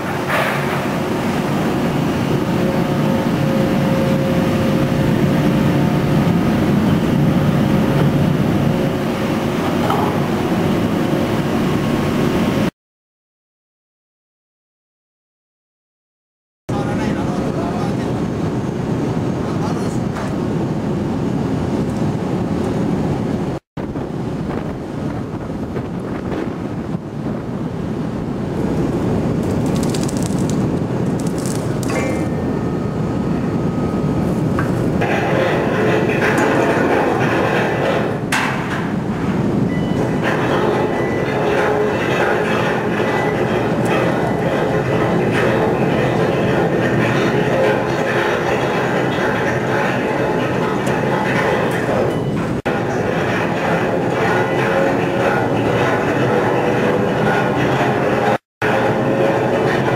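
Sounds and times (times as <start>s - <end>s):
heavy deck machinery noise: 0.0s - 12.7s, 16.7s - 59.9s
steady machine whine: 0.0s - 12.7s, 20.4s - 59.9s.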